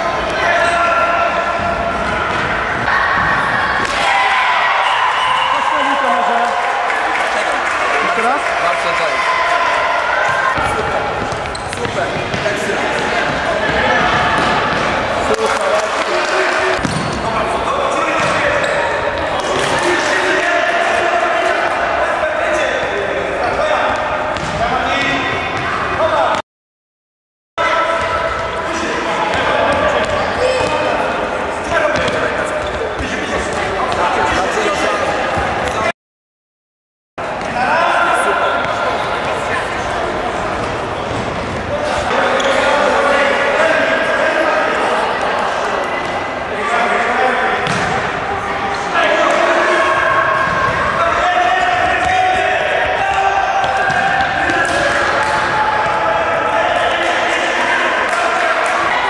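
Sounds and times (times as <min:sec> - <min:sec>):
ball kicked and bouncing: 0:16.8 - 0:17.3, 0:47.6 - 0:48.0.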